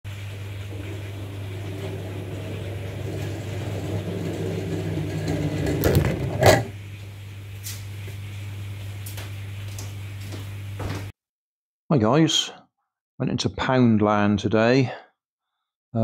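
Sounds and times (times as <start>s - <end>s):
toy car rolling on floor: 0.2s - 6.8s.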